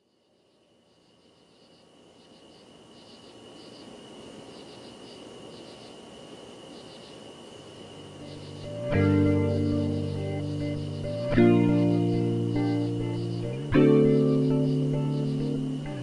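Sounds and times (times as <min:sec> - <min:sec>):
insects chirping: 0:00.0 - 0:16.0
steady hiss: 0:00.0 - 0:16.0
guitar music: 0:08.2 - 0:16.0.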